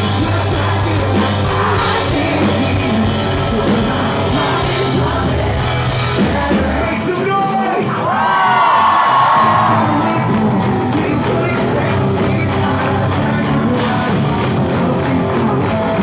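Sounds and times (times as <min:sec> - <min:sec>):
live rock band playing: 0:00.0 - 0:07.8, 0:08.8 - 0:16.0
person singing lead vocals: 0:00.0 - 0:16.0.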